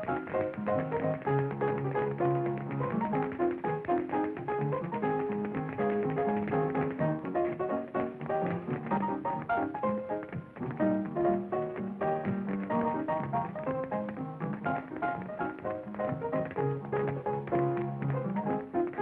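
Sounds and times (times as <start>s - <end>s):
hot jazz dance tune: 0.0s - 19.0s
shoes tapping on wooden floor: 0.0s - 19.0s.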